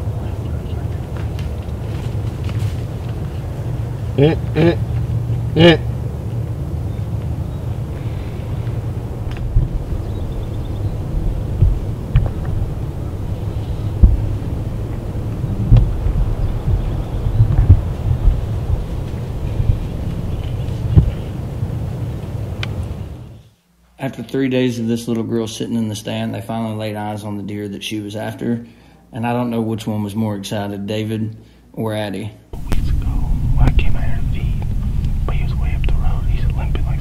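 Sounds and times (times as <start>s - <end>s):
low outdoor rumble: 0.0s - 37.0s.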